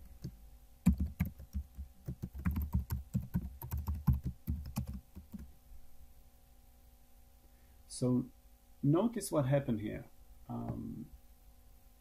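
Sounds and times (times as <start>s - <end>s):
typing on computer keyboard: 0.0s - 5.5s.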